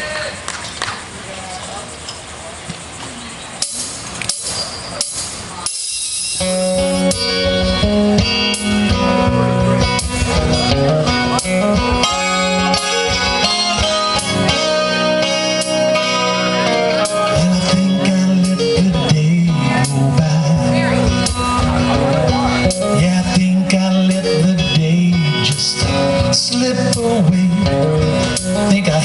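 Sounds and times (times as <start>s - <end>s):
acoustic guitar strumming chords: 3.6s - 29.0s.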